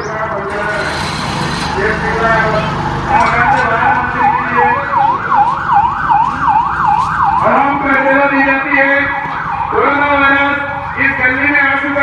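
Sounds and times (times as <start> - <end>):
police siren: 1.7 - 12.0.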